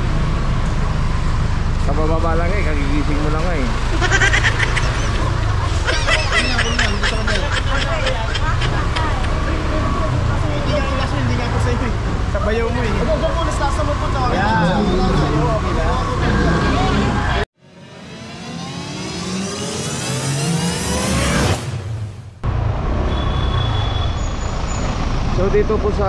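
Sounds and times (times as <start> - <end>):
low street rumble: 0.0 - 18.2
people talking: 5.9 - 17.4, 25.4 - 26.0
car engine accelerating: 8.7 - 23.0.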